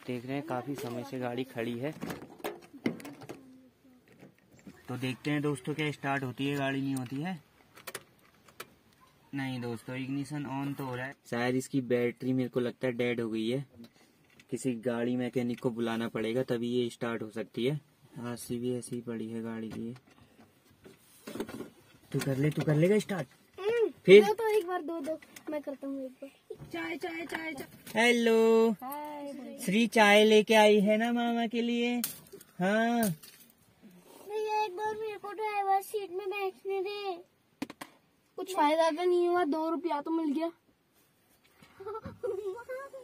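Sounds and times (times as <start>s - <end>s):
low background noise: 0.0s - 43.0s.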